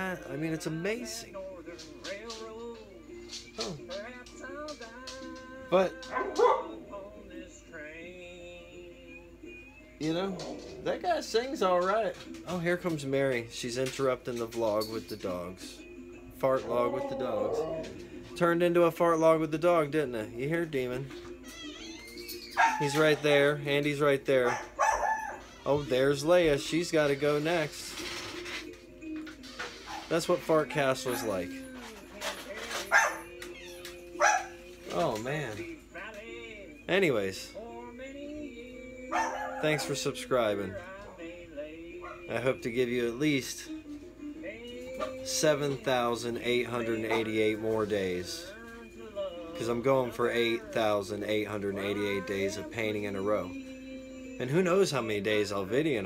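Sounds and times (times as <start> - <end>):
background music: 0.0 - 56.0
song in background: 0.0 - 56.0
dog whining: 6.0 - 6.8, 16.6 - 18.2, 21.3 - 23.3, 24.4 - 25.8, 29.7 - 31.6, 32.8 - 34.6, 39.1 - 40.0
dog barking: 6.1 - 6.8, 22.6 - 23.0, 24.4 - 25.5, 30.7 - 31.5, 32.9 - 33.4, 34.2 - 34.6, 39.1 - 40.0, 42.0 - 42.3, 47.1 - 47.3.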